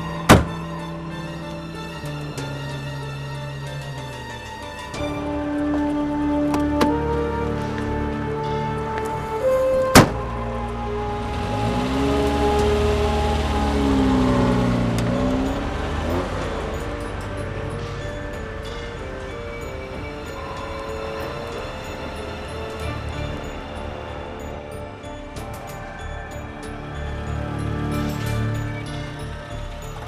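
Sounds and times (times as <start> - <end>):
background music: 0.0 - 30.0
car engine revving: 0.0 - 30.0.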